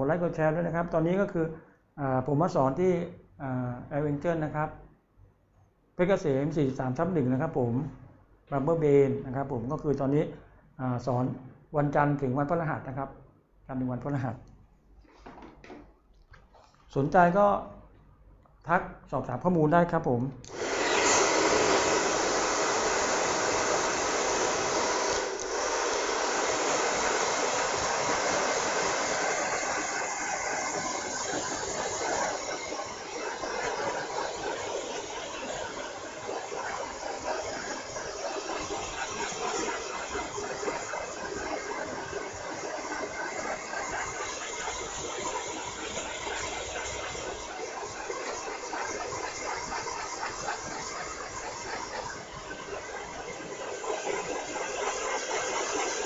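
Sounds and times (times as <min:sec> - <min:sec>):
hair dryer blowing: 0:20.5 - 0:56.0.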